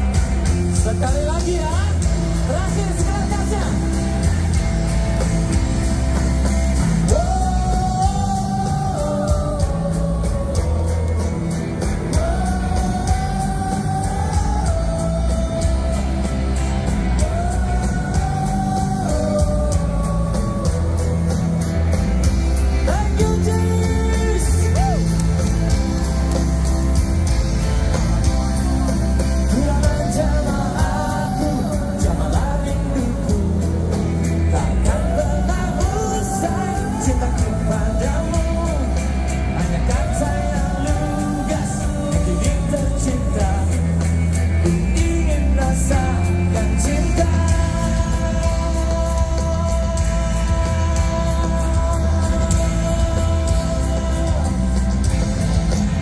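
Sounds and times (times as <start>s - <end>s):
drums keeping steady beat: 0.0s - 56.0s
live rock band: 0.0s - 56.0s.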